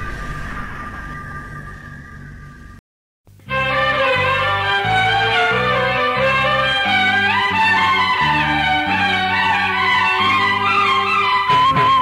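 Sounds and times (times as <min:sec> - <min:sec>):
low rumble: 0:00.0 - 0:02.8.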